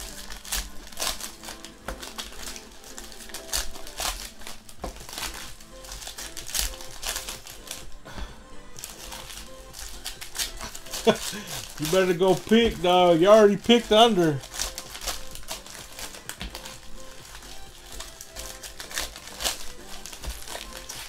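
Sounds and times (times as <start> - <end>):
background music: 0.0 - 21.0
plastic wrappers crinkling: 0.0 - 21.0.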